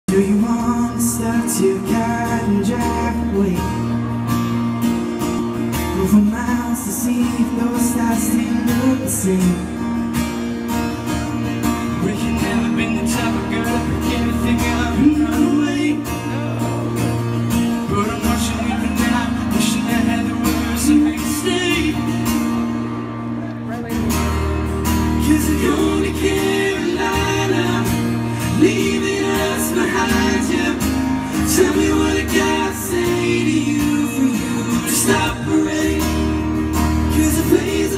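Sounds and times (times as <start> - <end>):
live pop band with singing: 0.1 - 37.9.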